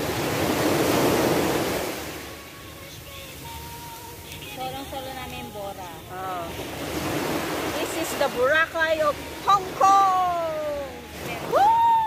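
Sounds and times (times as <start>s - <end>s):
wave washing onto beach: 0.0s - 12.0s.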